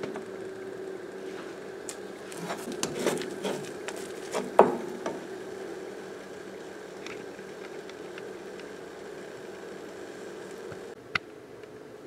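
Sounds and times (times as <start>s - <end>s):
steady low hum: 0.0s - 12.0s
spatula scraping frying pan: 2.3s - 4.6s.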